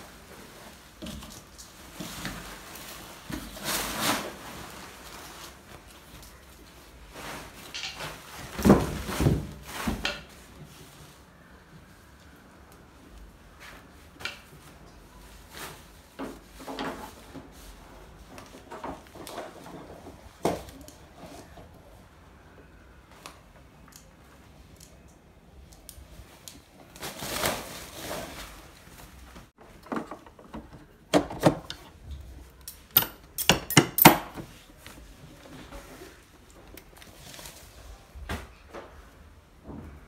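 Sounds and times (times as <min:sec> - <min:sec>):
plastic wrapping crinkling: 0:00.1 - 0:10.0, 0:26.2 - 0:29.5.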